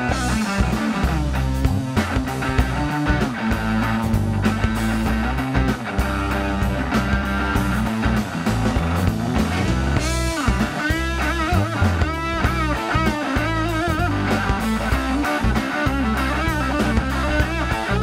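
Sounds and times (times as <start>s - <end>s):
bass guitar: 0.0s - 18.0s
electric guitar lead: 0.0s - 18.0s
steady drum beat: 0.0s - 18.0s.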